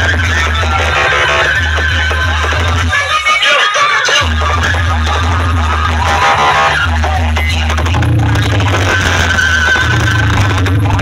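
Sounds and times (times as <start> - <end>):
loud dj music with heavy bass: 0.0 - 11.0.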